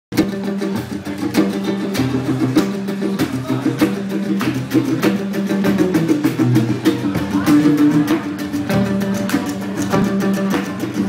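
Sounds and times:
percussion hits: 0:00.1 - 0:11.0
small plucked string instrument: 0:00.1 - 0:11.0
strummed acoustic guitar: 0:00.1 - 0:11.0.

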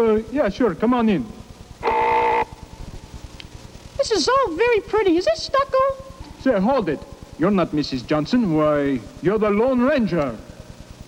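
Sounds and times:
tape hum and hiss: 0:00.0 - 0:11.0
flat buzzing tone: 0:01.2 - 0:04.4.

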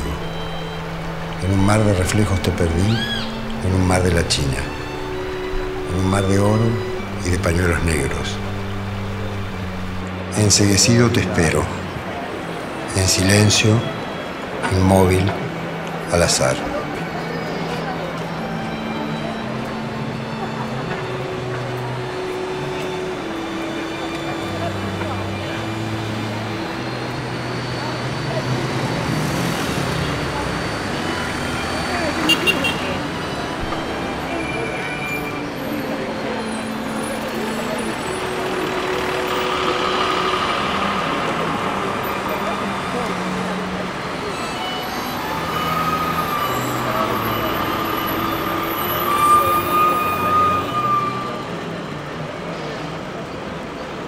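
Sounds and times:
crowd chatter: 0:00.0 - 0:54.0
traffic noise: 0:00.0 - 0:54.0.

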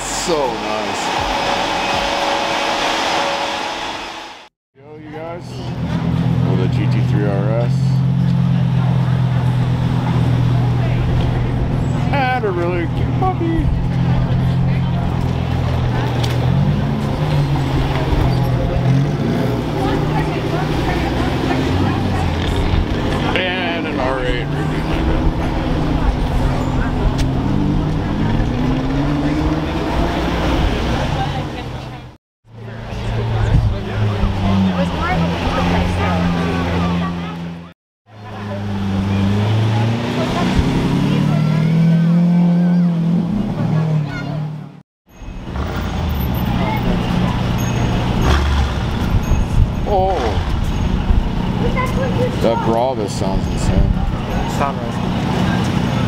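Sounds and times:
sports car engines at low speed: 0:00.0 - 0:04.5, 0:05.1 - 0:56.0.

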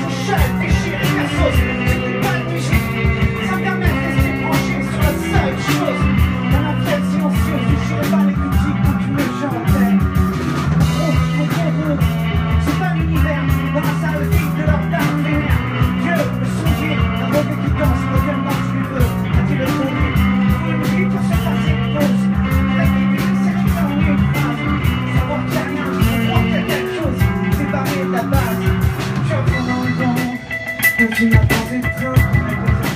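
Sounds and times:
rock band playing: 0:00.0 - 0:32.9.

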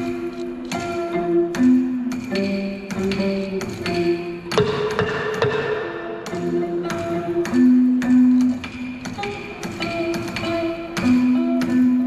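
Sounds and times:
plucked lute with held notes: 0:00.0 - 0:12.0.

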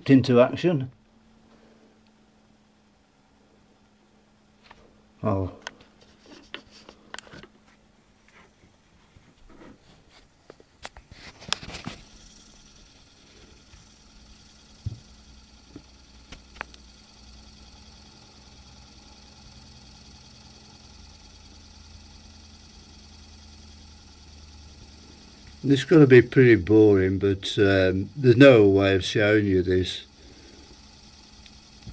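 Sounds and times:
heater blower fan whirring: 0:00.0 - 0:31.9.

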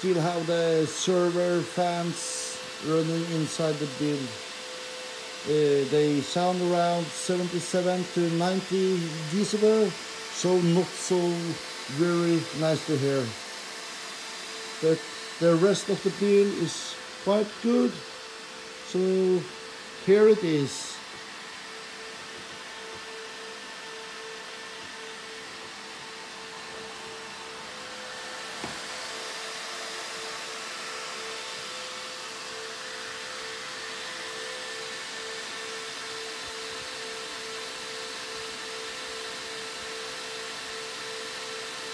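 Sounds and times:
computer fans rushing and whining: 0:00.0 - 0:35.6.

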